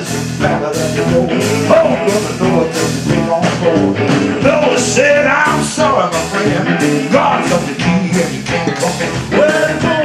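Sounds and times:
electric guitar: 0.0 - 10.0
live band playing up-tempo song: 0.0 - 10.0
person singing: 0.0 - 10.0
steady drum beat: 0.0 - 10.0.

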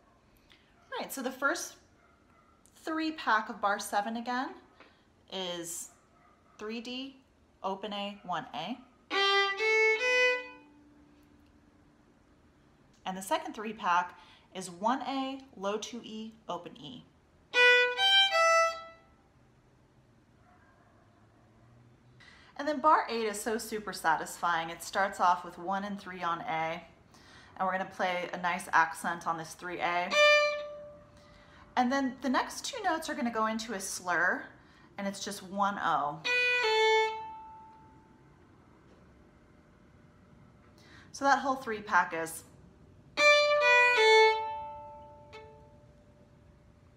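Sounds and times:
violin bowed notes: 9.1 - 10.9, 17.5 - 19.1, 29.9 - 31.2, 36.2 - 38.0, 43.2 - 45.9
violin string ringing: 30.1 - 31.1, 43.2 - 45.9.

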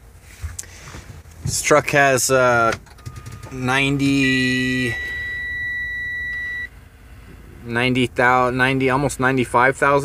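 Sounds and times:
dashboard warning buzzer beep: 3.0 - 6.9.

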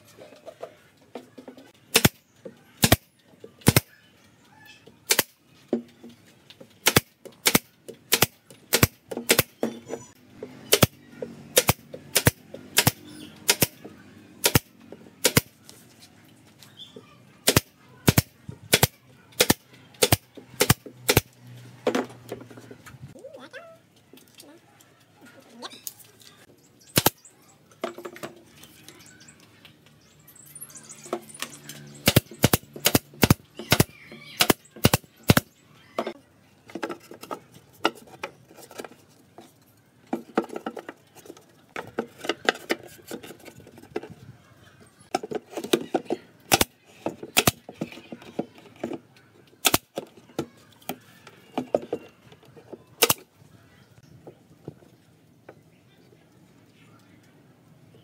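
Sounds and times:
nail gun firing: 1.9 - 2.2, 2.8 - 3.9, 5.1 - 5.4, 6.8 - 9.6, 10.7 - 13.8, 14.4 - 15.6, 17.4 - 21.3, 27.0 - 27.2, 32.0 - 35.5, 46.5 - 46.7, 47.4 - 47.6, 49.6 - 49.9, 53.0 - 53.2.

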